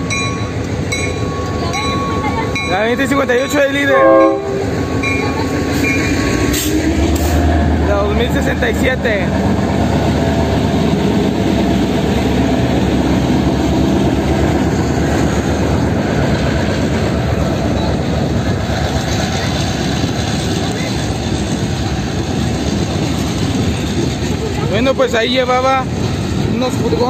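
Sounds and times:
diesel locomotives running loud: 0.0s - 27.0s
rail cars rolling on rails: 0.0s - 27.0s.

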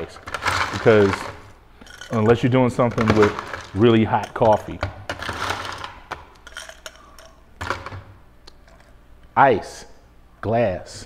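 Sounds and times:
ice cubes clinking into glass: 0.2s - 7.9s.

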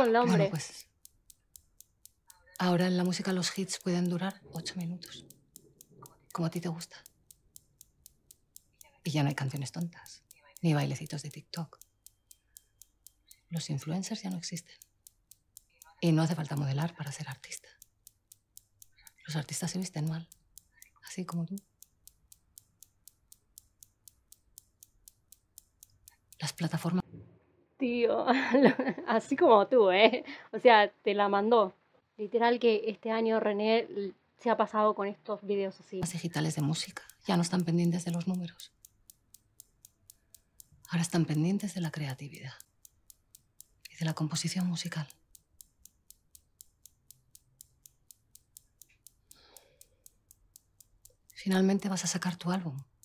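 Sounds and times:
faint even ticking: 0.0s - 27.0s, 36.0s - 53.0s.

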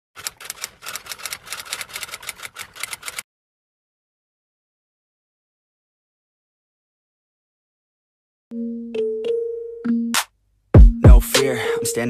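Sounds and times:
typewriter keystroke clicks: 0.2s - 3.2s.

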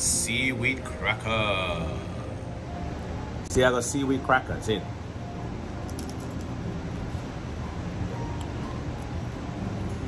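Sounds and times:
air conditioning hum: 0.0s - 10.0s.

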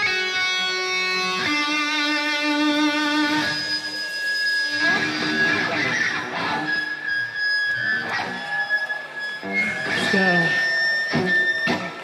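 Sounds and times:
crowd shout: 7.7s - 12.0s.

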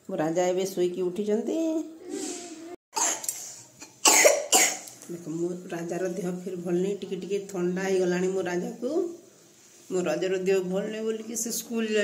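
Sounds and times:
loud coughs: 3.0s - 4.9s.

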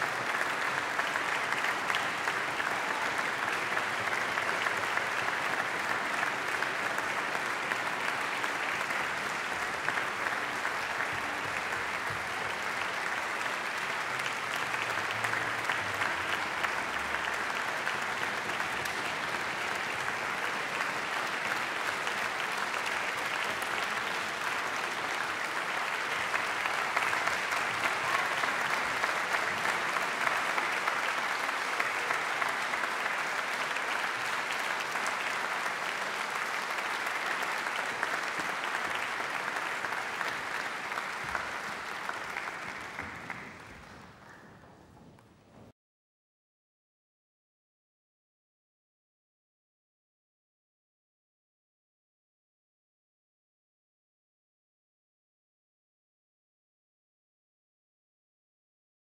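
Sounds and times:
audience applauding: 0.0s - 45.3s.

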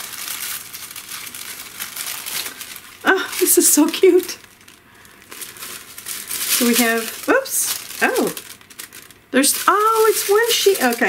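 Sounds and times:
paper crinkling and rustling: 0.0s - 11.0s.

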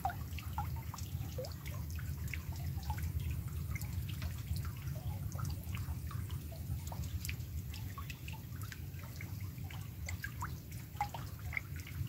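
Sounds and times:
raindrops plinking into water: 0.0s - 12.0s.

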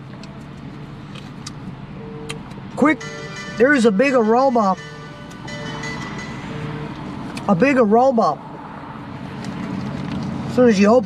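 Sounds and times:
low hum inside car: 0.0s - 9.6s.

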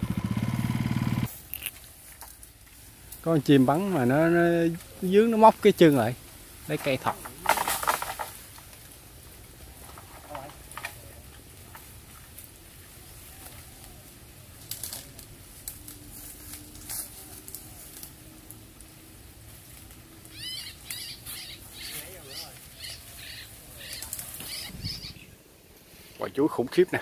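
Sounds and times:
dry leaves rustling: 0.0s - 27.0s.

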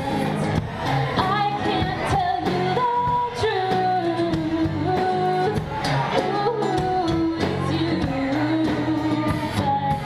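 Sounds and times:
drum kit: 0.0s - 10.0s
strummed acoustic guitar: 0.0s - 10.0s.

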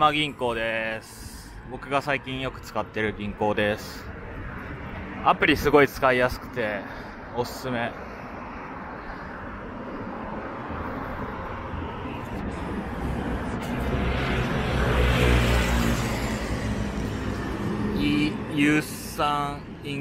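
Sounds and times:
city street traffic: 0.0s - 20.0s
vehicle engine passing: 10.6s - 19.2s.

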